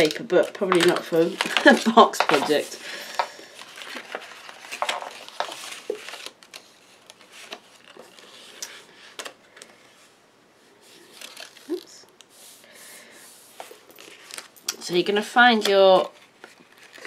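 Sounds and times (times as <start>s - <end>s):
paper rustling and tapping: 0.0s - 8.2s.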